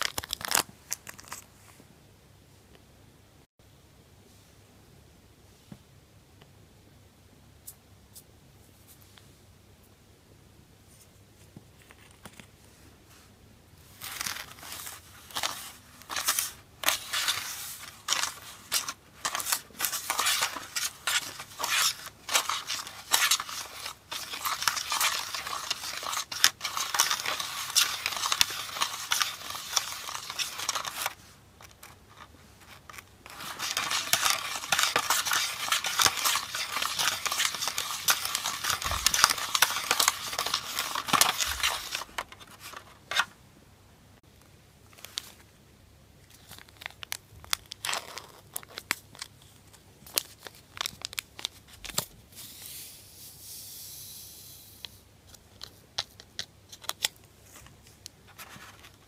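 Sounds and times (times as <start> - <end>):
plastic spoon scraping tray: 16.2 - 42.6.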